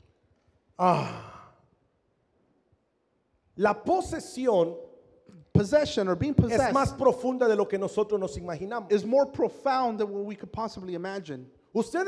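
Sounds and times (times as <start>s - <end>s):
man sighing: 0.8s - 1.6s.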